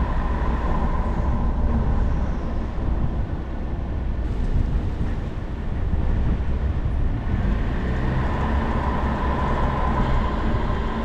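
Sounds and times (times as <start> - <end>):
tyre and road noise: 0.0 - 11.0.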